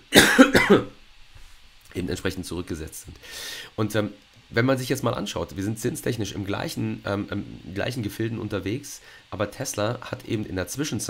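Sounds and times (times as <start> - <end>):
man coughing: 0.1 - 1.0.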